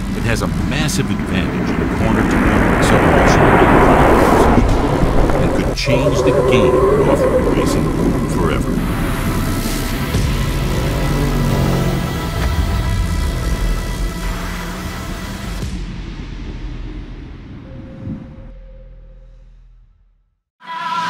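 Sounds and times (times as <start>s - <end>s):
low rumble: 0.0s - 20.2s
background music: 5.4s - 16.8s.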